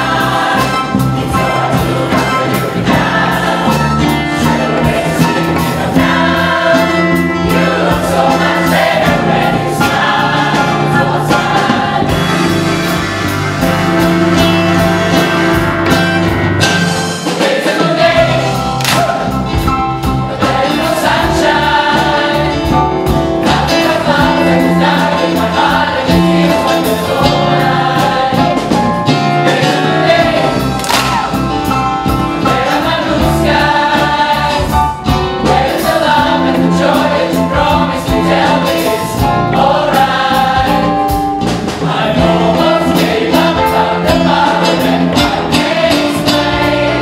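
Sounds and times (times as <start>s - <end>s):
choir singing gospel: 0.0s - 47.0s.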